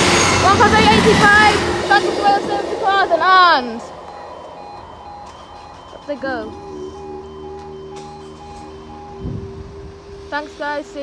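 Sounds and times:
level crossing alarm tones: 0.2s - 11.0s.

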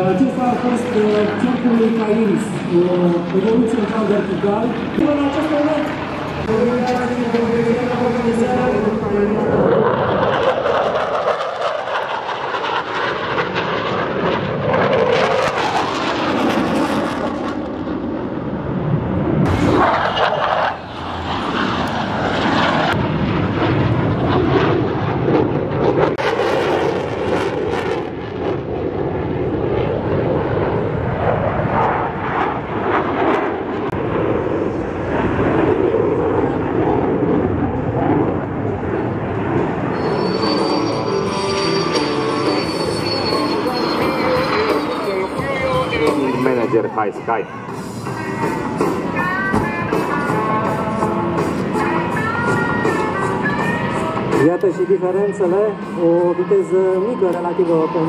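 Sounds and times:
jet engine roar: 0.0s - 58.0s.

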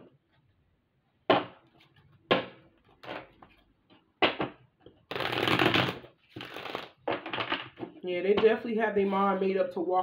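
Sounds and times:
cards shuffling by hand: 5.1s - 7.3s.

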